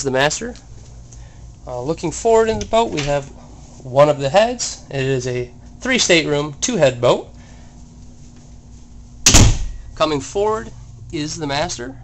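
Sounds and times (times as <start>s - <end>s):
low room noise: 0.0s - 12.0s
cabin door thump: 9.2s - 9.8s.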